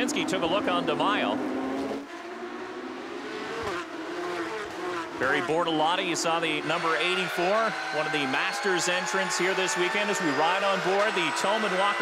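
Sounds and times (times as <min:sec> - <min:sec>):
race car engines running hard: 0:00.0 - 0:12.0.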